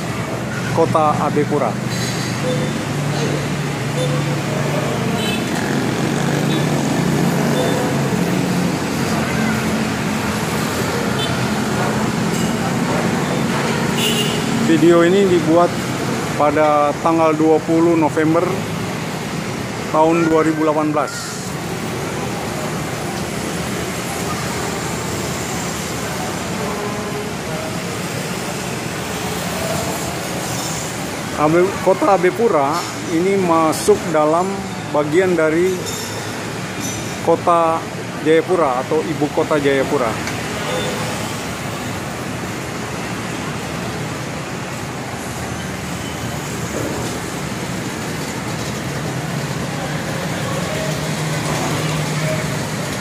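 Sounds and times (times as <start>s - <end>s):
cars and motorcycles passing: 0.0s - 53.0s
street traffic noise: 0.0s - 53.0s.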